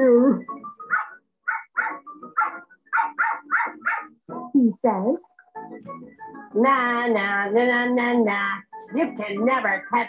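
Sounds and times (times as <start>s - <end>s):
cartoon dog barking: 0.9s - 4.1s.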